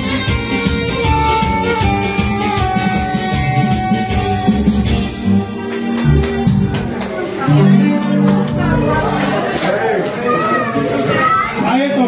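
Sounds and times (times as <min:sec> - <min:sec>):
people talking and calling out: 0:05.1 - 0:12.0
children's voices: 0:08.1 - 0:11.7.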